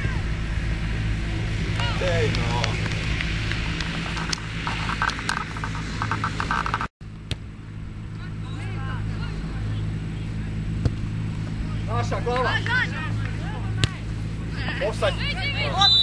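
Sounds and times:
distant players shouting: 0:00.0 - 0:02.8, 0:08.1 - 0:16.0
low hum: 0:00.0 - 0:16.0
ball kicks: 0:10.8 - 0:11.0.

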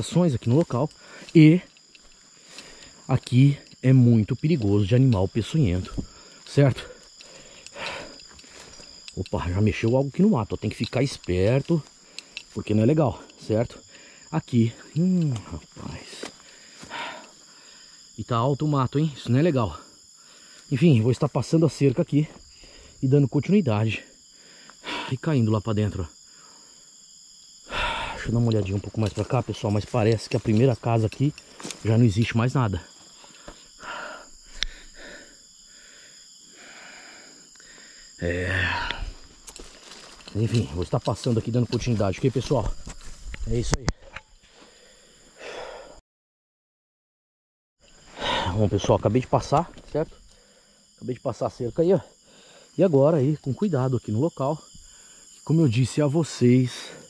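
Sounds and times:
crickets chirping: 0:00.0 - 0:46.0, 0:47.8 - 0:57.0
person breathing: 0:00.9 - 0:03.1, 0:06.0 - 0:09.1, 0:13.8 - 0:14.3, 0:16.3 - 0:18.1, 0:20.2 - 0:20.7, 0:22.4 - 0:23.0, 0:24.2 - 0:25.1, 0:26.3 - 0:26.9, 0:27.6 - 0:28.3, 0:33.2 - 0:39.3, 0:44.0 - 0:46.0, 0:50.2 - 0:50.9, 0:52.2 - 0:52.8.

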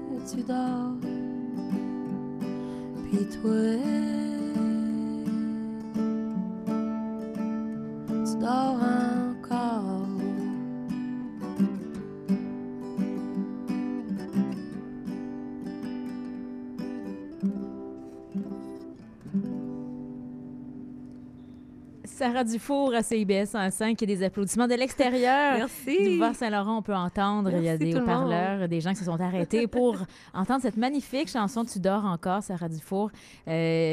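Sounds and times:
woman singing: 0:00.0 - 0:01.3, 0:02.9 - 0:06.0, 0:08.3 - 0:10.6, 0:25.2 - 0:26.4, 0:27.5 - 0:28.5
acoustic guitar strumming: 0:00.0 - 0:22.1.

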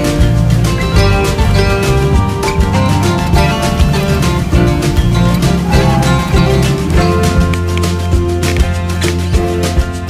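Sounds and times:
music with steady beat and bass: 0:00.0 - 0:10.0.

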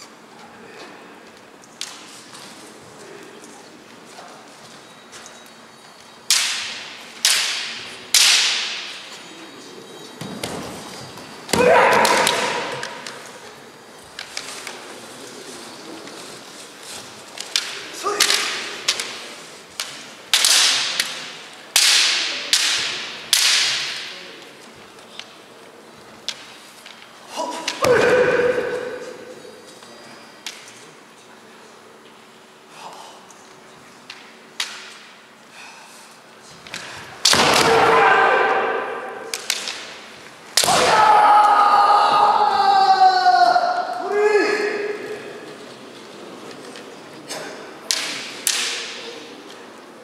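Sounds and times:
bamboo swords clacking: 0:06.3 - 0:09.1, 0:11.5 - 0:14.9, 0:17.2 - 0:25.4, 0:34.1 - 0:35.2, 0:36.6 - 0:41.6, 0:47.8 - 0:49.6
loud drawn-out shouts: 0:11.5 - 0:13.5, 0:27.3 - 0:29.3, 0:37.3 - 0:39.3, 0:40.6 - 0:45.4.

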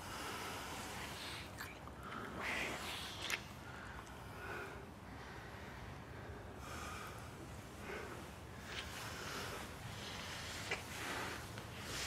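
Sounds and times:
people breathing: 0:00.0 - 0:12.0.

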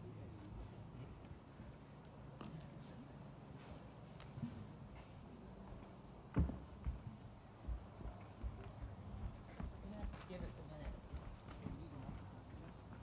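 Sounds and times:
faint knocking and thumping: 0:04.4 - 0:12.7.

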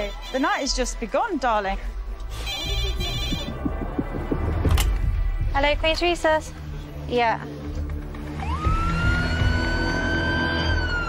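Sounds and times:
low pulsing throb: 0:01.8 - 0:07.0.

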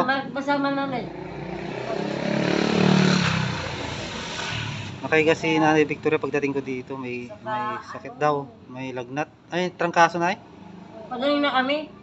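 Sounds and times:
vehicle engine passing by: 0:00.0 - 0:07.4, 0:09.9 - 0:12.0.

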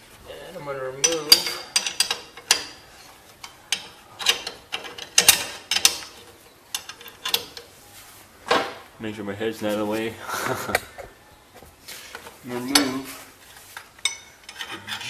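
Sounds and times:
wrench clicking on metal bolts: 0:01.0 - 0:02.8, 0:03.4 - 0:07.7, 0:14.0 - 0:15.0.

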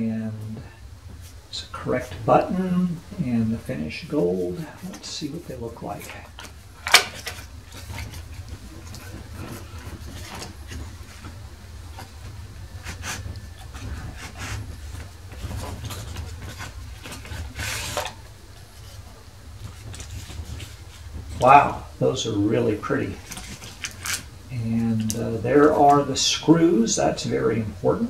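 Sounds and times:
steady low hum: 0:00.0 - 0:28.0
cardboard packaging rustling: 0:00.6 - 0:26.9.

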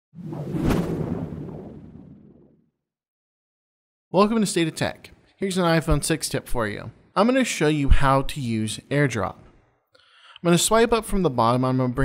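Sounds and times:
low rumble: 0:00.2 - 0:02.5
whoosh: 0:00.2 - 0:02.6.

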